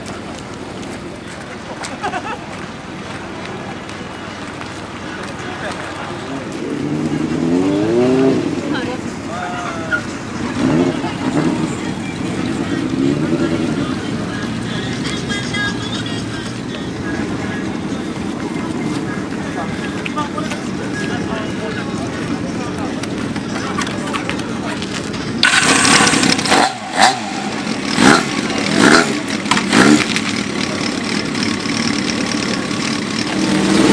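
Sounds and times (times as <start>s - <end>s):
motorcycle engine revving: 5.9s - 9.2s, 10.1s - 16.0s, 25.3s - 33.9s
motorcycle engine idling: 10.1s - 33.9s.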